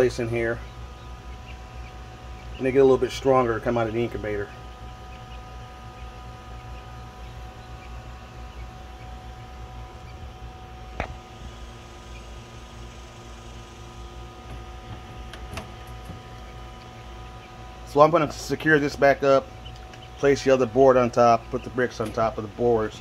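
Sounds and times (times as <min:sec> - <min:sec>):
small fan whirring: 0:00.0 - 0:23.0.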